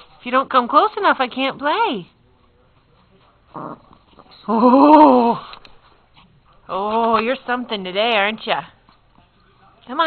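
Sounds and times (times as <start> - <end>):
small dog growling: 3.5 - 4.0.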